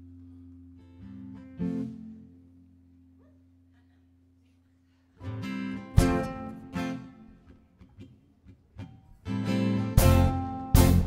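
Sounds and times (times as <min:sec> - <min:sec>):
acoustic guitars strumming chords: 0:00.0 - 0:02.7, 0:05.2 - 0:11.0.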